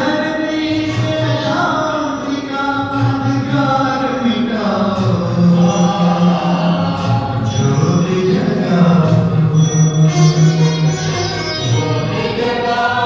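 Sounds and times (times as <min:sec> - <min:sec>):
devotional singing: 0:00.0 - 0:10.1, 0:11.7 - 0:13.0
musical accompaniment: 0:00.0 - 0:13.0.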